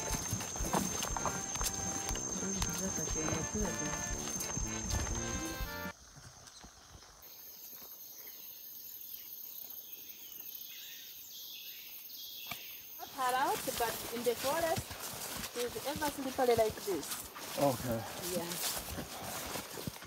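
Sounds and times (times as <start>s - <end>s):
faint calls: 0.0s - 5.9s
person speaking: 0.0s - 5.9s.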